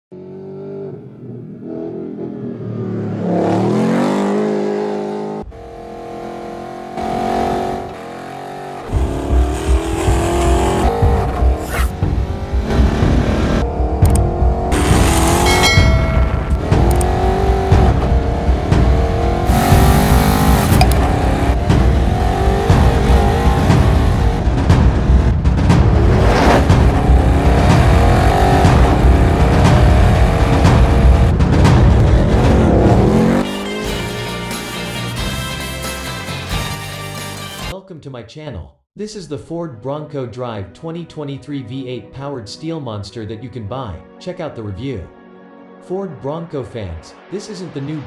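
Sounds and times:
car engine revving: 0.1 - 34.4
music with heavy low beat: 8.8 - 35.6.

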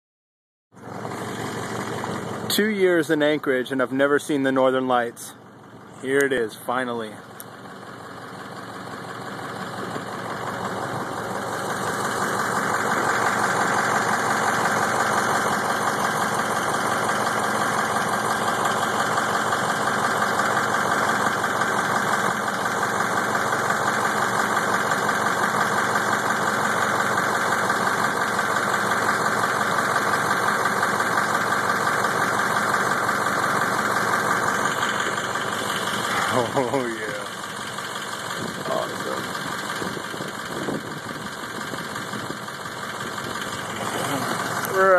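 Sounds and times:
engine running: 0.7 - 44.9.

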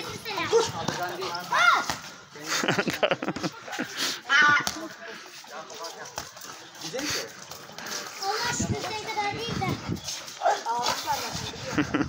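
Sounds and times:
young people talking: 0.0 - 12.0
dog playing with a ball: 5.6 - 11.4.

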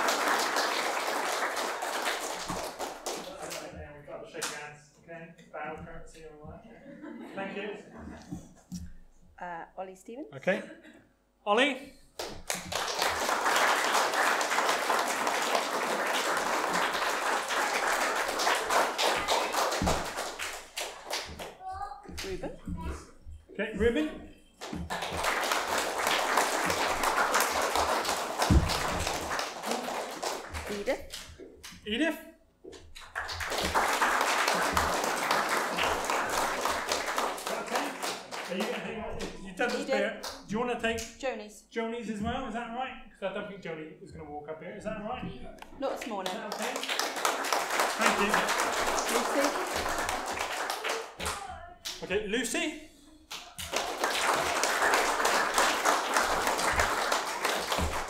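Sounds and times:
congregation applauding: 0.0 - 3.8, 12.2 - 21.5, 24.6 - 31.3, 33.0 - 40.5, 45.8 - 58.0.

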